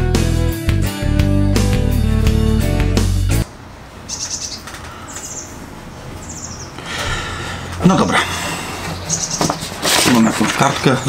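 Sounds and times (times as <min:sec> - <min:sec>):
small bird chirping: 0:04.1 - 0:05.6, 0:06.2 - 0:06.8, 0:09.0 - 0:09.6.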